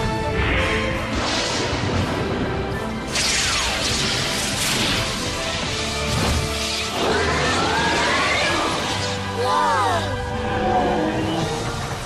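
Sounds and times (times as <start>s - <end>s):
cartoon soundtrack music: 0.0s - 12.0s.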